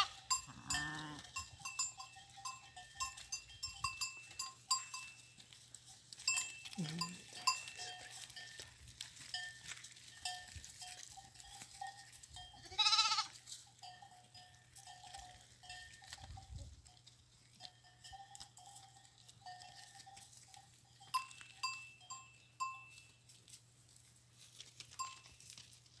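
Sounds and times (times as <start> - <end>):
animal bleat: 0.0 - 1.4, 6.7 - 7.4, 12.6 - 13.4
livestock bells clinking: 0.0 - 26.0.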